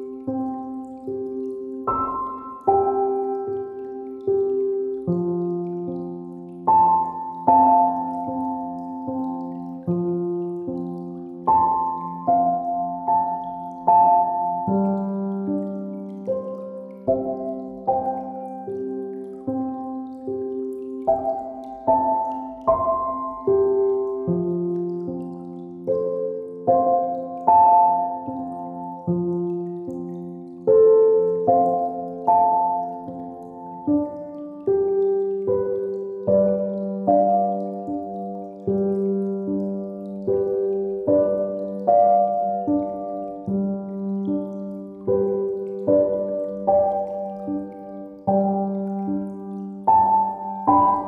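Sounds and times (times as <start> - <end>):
faint dripping rain: 0.0 - 51.0
soft piano notes: 0.0 - 51.0.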